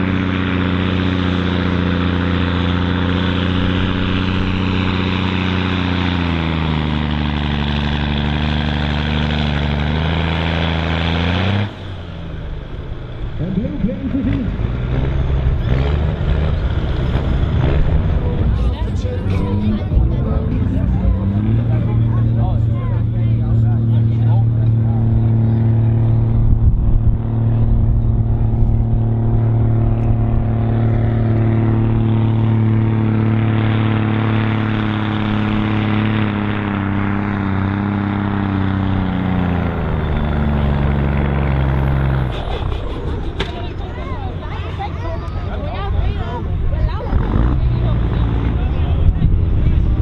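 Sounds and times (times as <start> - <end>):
truck diesel engine under load: 0.0 - 50.0.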